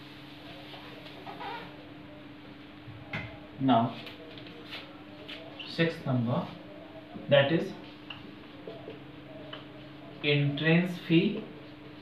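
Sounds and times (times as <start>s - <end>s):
marker squeaking on whiteboard: 1.2s - 1.8s.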